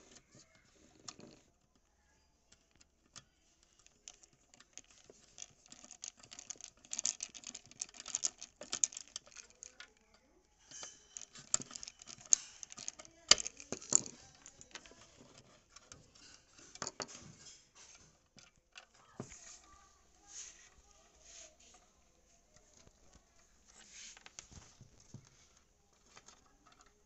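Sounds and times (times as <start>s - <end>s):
wires and plastic housing rattling: 0.0s - 27.0s.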